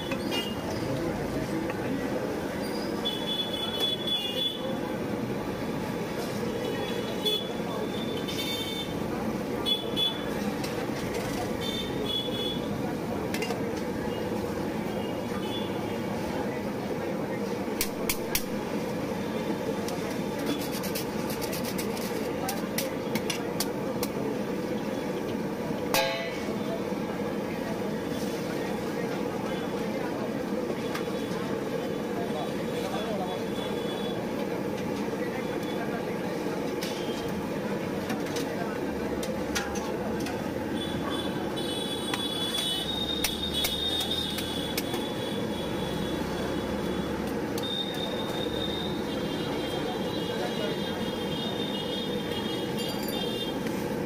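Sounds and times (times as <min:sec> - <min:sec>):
traffic hum: 0:00.0 - 0:54.0.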